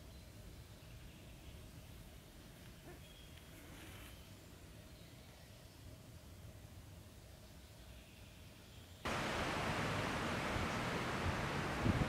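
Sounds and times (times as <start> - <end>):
wind in trees: 0.0 - 12.0.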